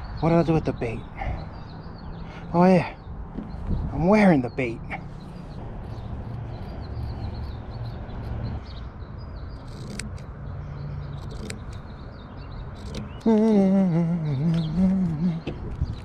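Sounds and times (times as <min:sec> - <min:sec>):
scissors snipping fabric: 0:09.6 - 0:10.2.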